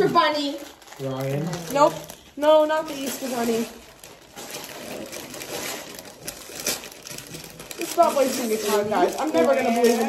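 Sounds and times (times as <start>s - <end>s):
gift packaging rustling: 0.0s - 10.0s.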